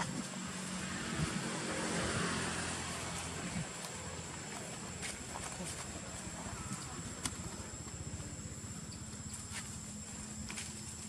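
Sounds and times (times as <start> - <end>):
distant engine hum: 0.0 - 11.0.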